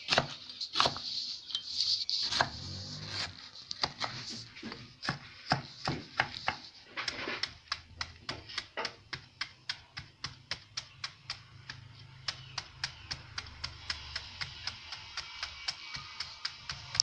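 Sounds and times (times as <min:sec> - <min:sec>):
knife slicing on wooden board: 0:02.2 - 0:07.6.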